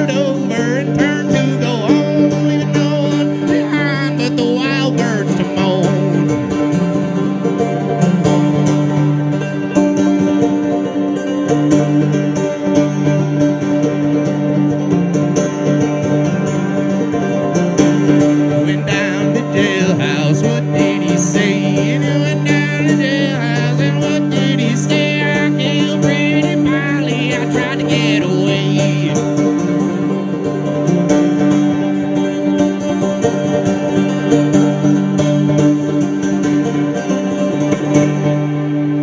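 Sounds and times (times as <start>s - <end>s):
person singing: 0.0s - 6.6s, 18.5s - 29.6s
banjo through loudspeakers: 0.0s - 39.0s.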